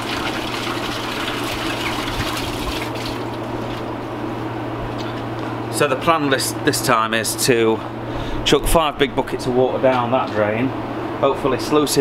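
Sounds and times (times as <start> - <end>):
water running through drain: 0.0 - 3.5
low mechanical hum: 0.0 - 12.0.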